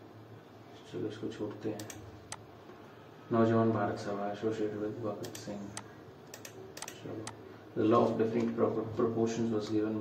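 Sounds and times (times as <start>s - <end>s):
computer mouse clicks: 1.8s - 2.4s, 5.2s - 7.4s.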